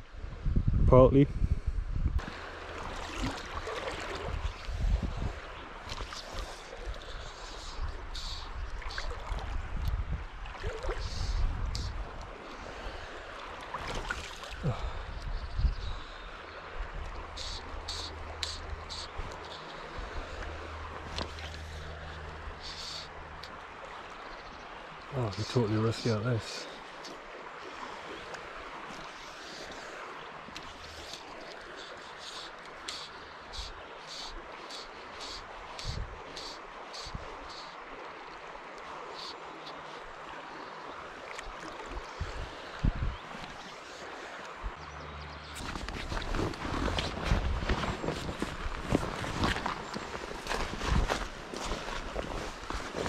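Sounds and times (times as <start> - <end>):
river water rushing: 2.2 - 15.1, 16.2 - 53.0
faint high ticks: 30.5 - 37.8
footsteps through vegetation: 45.5 - 53.0.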